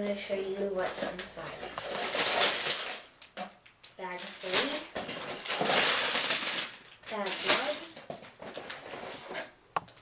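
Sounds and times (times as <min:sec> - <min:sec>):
plastic bag crinkling: 0:00.7 - 0:09.4
bag rustle: 0:00.8 - 0:03.1, 0:04.1 - 0:09.5.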